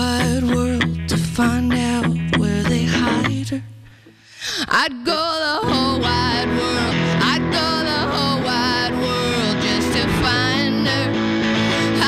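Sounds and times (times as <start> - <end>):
live electric guitar rock: 0.0 - 4.4, 5.6 - 12.0.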